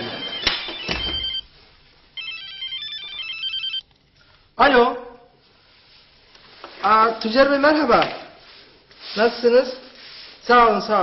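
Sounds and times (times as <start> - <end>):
phone ringtone melody: 0.0 - 1.4, 2.2 - 3.8.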